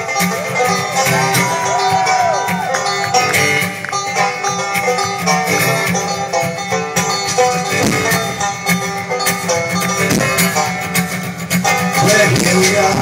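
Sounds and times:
banjo and guitar picking: 0.0 - 13.0.

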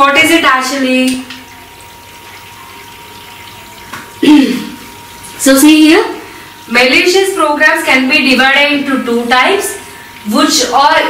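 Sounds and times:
woman clearing her throat: 4.2 - 4.8.

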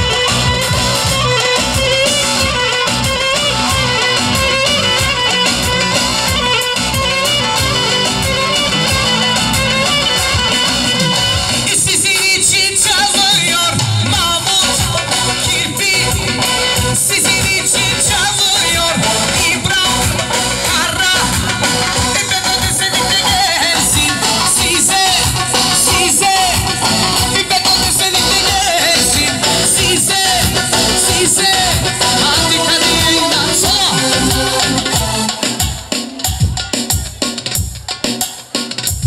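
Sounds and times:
wavering high lead melody: 0.0 - 12.5, 29.0 - 35.6
live band playing dance tune: 0.0 - 39.0.

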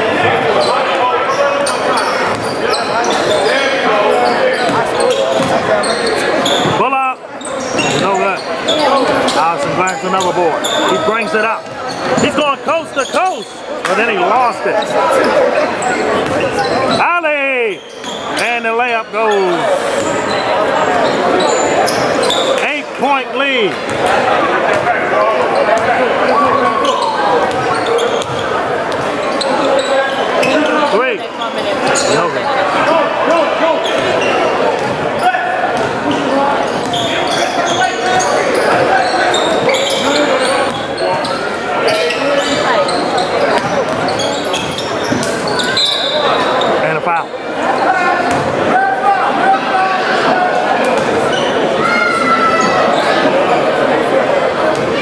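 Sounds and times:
overlapping chatter and calls: 0.0 - 55.0.

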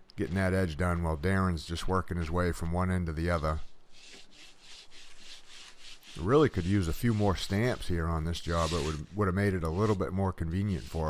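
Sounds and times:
faint rubbing scraping noise: 0.2 - 11.0.

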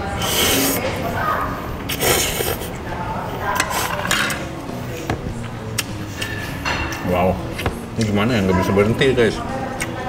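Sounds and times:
noodles slurped: 0.2 - 0.9, 1.9 - 2.8.

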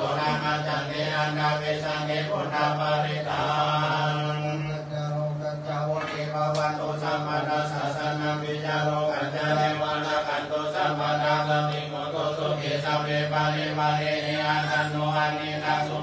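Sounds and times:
group chanting in unison: 0.0 - 16.0.

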